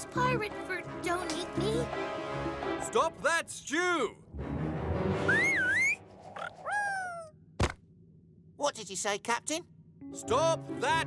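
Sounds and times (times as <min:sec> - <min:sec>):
wobbling whistle-like squeak: 0:05.2 - 0:07.2
falling squeaky call: 0:05.3 - 0:07.3.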